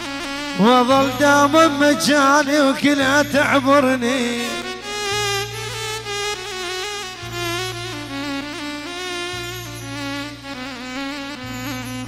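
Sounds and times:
reedy keyboard lead melody: 0:00.0 - 0:12.0
low bass drone: 0:03.0 - 0:12.0.

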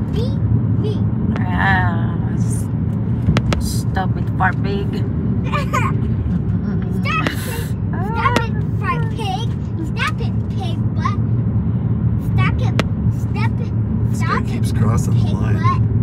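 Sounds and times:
voices: 0:00.0 - 0:02.7, 0:06.6 - 0:11.3, 0:12.2 - 0:15.8
car interior road and engine rumble: 0:00.0 - 0:16.0.

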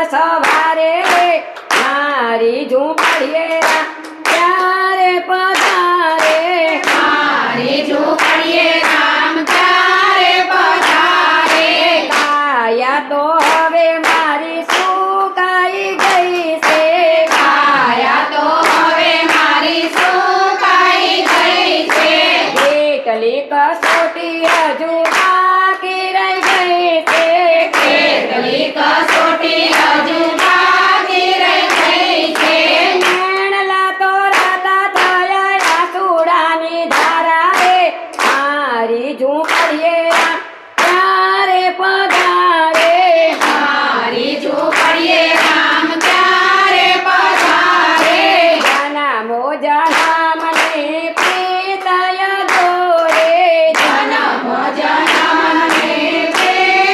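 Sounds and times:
rhythmic hand-clapping: 0:00.0 - 0:56.9
women singing devotional song: 0:00.0 - 0:56.9.

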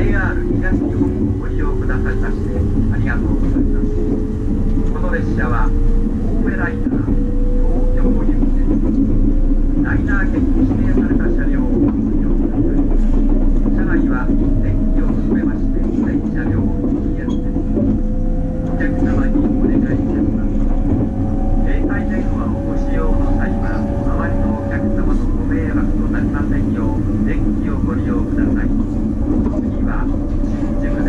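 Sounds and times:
train rumbling on rails: 0:00.0 - 0:31.0
train motor whine: 0:12.8 - 0:31.0.

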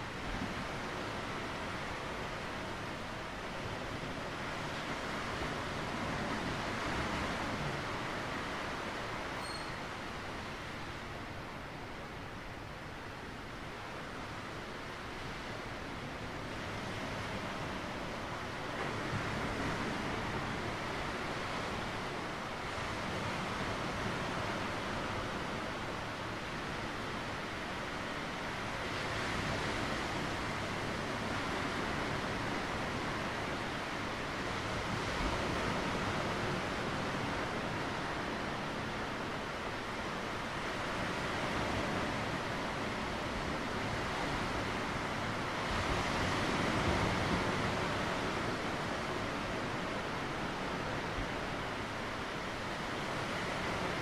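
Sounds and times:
surf washing over rocks: 0:13.0 - 0:54.0.

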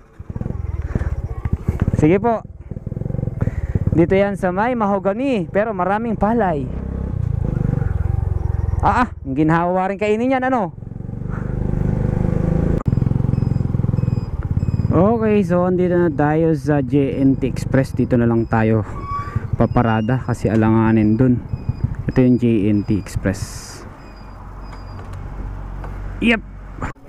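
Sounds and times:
small motorcycle engine running: 0:00.0 - 0:09.1, 0:10.7 - 0:23.1.

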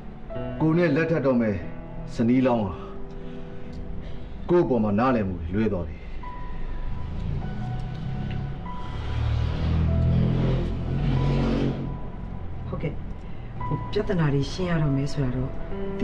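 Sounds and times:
low synthesizer pad: 0:05.3 - 0:14.1.

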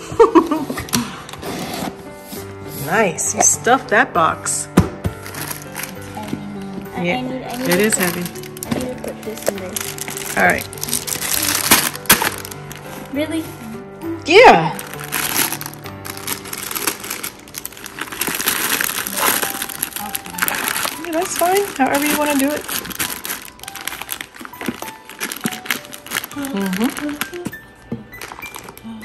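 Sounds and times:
background music: 0:00.0 - 0:29.0
plastic packaging crinkling: 0:05.1 - 0:13.2, 0:14.7 - 0:29.0
plastic-wrapped toys rustling: 0:05.1 - 0:13.7, 0:14.7 - 0:29.0.

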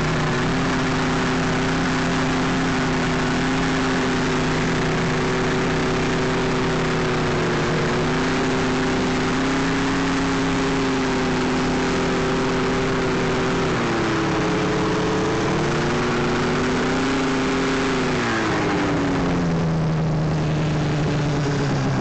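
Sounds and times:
snowmobile engine running at low revs: 0:00.0 - 0:22.0.

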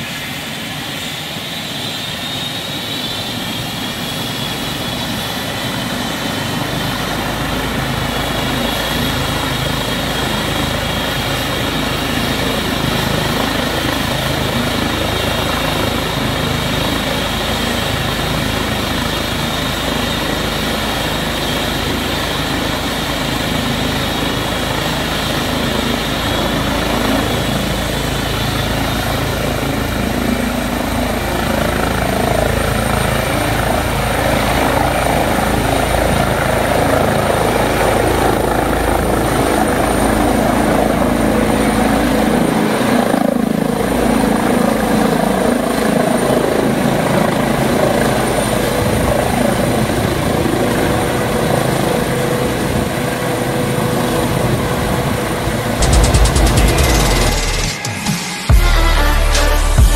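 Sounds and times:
helicopter turbine and rotor: 0:00.0 - 0:59.9.

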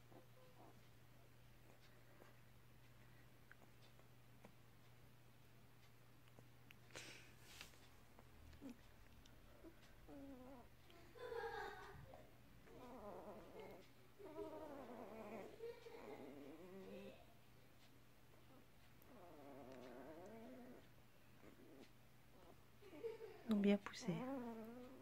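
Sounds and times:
puppies whimpering: 0:09.5 - 0:17.2.

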